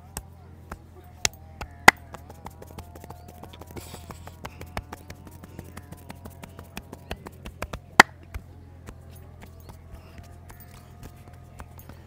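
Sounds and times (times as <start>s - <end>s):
hands tapping and slapping head: 0.1s - 12.0s.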